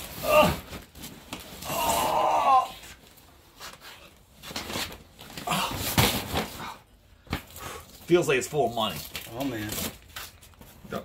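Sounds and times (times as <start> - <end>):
man groaning: 1.6 - 2.8.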